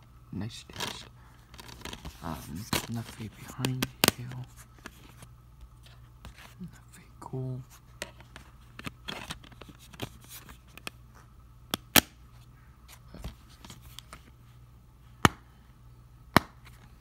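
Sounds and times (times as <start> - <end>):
plastic case rustling: 0.6 - 6.6, 8.0 - 10.9.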